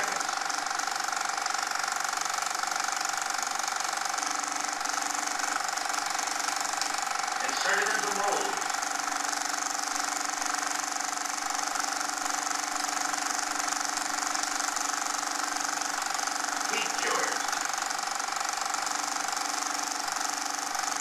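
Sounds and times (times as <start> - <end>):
mechanical hum with hiss: 0.0 - 21.0.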